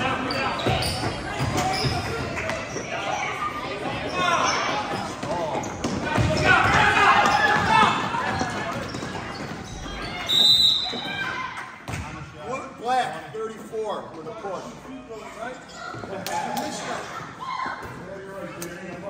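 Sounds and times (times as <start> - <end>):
players and spectators shouting: 2.8 - 9.0
referee's whistle: 10.1 - 11.2.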